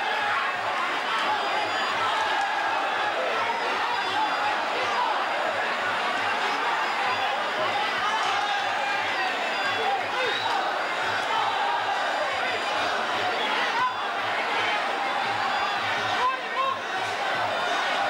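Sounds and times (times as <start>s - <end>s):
crowd shouting: 0.0s - 18.0s.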